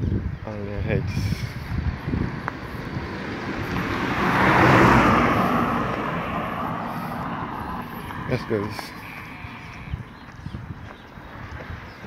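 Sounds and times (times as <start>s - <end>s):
car passing by: 1.6s - 10.0s.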